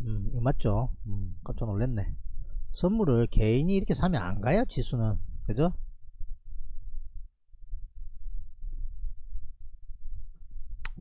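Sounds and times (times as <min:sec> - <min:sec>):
low rumbling thumps: 0:00.0 - 0:10.8.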